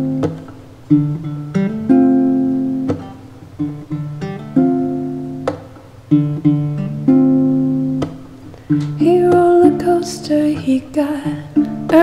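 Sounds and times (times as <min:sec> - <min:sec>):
acoustic guitar chords ringing: 0:00.0 - 0:12.0
sharp tap: 0:05.4 - 0:05.8.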